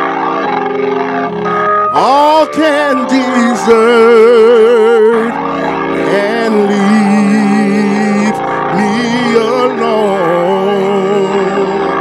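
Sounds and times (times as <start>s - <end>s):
keyboard sustained chords: 0.0s - 12.0s.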